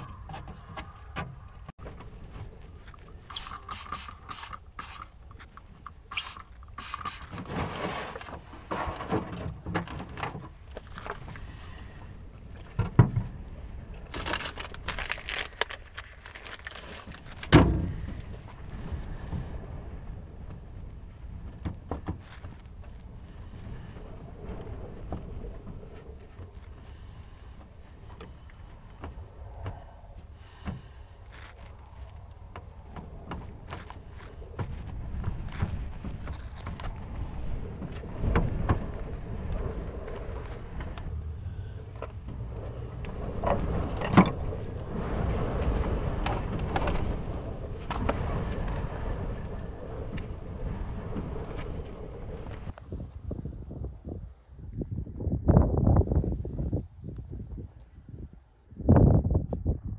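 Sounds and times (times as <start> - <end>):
gusty wind on microphone: 0.0 - 59.9
paper rustling: 14.0 - 17.5.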